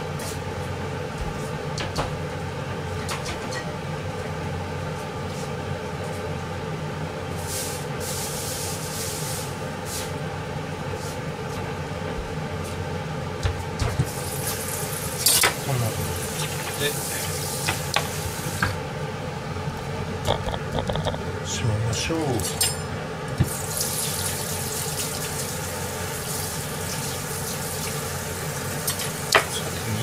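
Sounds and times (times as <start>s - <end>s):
steady hum: 0.0s - 24.7s.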